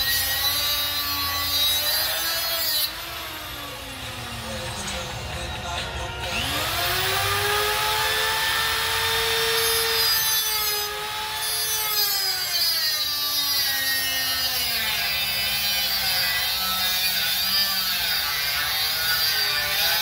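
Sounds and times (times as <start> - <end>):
angle grinder grinding steel: 0.0 - 20.0.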